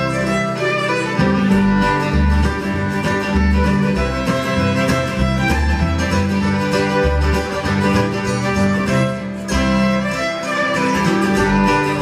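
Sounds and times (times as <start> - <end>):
bluegrass band playing: 0.0 - 12.0.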